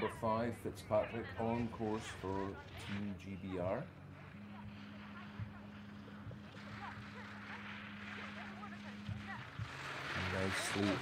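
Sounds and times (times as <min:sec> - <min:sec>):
steady low hum: 0:00.0 - 0:11.0
skis hissing and scraping on snow: 0:06.7 - 0:11.0.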